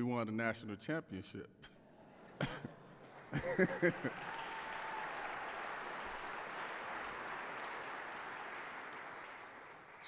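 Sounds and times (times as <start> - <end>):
audience applauding: 2.9 - 10.0.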